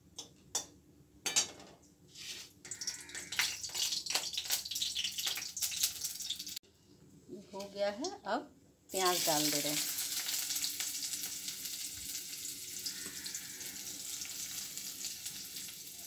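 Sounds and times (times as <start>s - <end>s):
spices crackling in hot oil: 2.6s - 6.6s, 8.9s - 16.0s.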